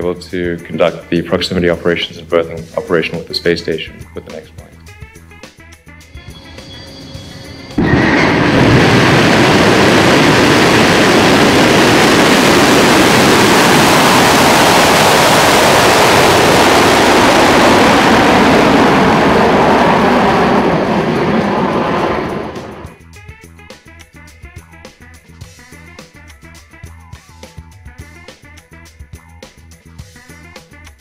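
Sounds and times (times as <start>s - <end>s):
rocket engines roaring: 0.0s - 4.7s, 6.1s - 23.0s.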